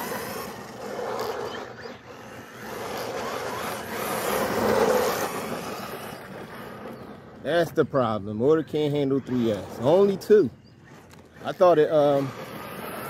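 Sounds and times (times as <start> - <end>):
electric motor whine: 0.0 - 7.4, 9.0 - 13.0
tyre noise on asphalt: 0.0 - 7.6.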